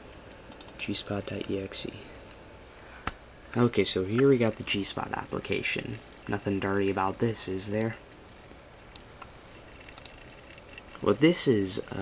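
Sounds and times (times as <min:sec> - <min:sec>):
computer mouse clicks: 0:00.1 - 0:01.5, 0:09.7 - 0:11.0.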